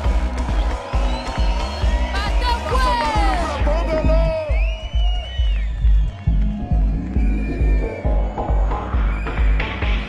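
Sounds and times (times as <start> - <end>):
electronic club track: 0.0 - 10.0
heavy bass kick: 0.0 - 10.0.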